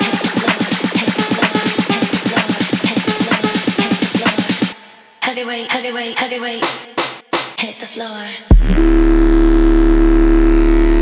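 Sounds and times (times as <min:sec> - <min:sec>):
buzzy synthesizer note: 0:00.0 - 0:04.8, 0:08.5 - 0:11.0
deep sub-bass: 0:08.5 - 0:11.0.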